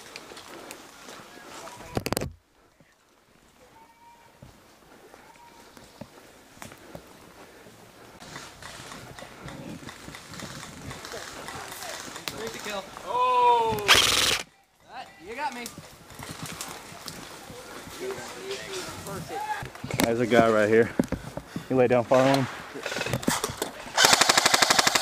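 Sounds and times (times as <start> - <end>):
footsteps on dirt trail: 0.0 - 13.2, 14.8 - 23.6
brush rustling: 0.0 - 24.0.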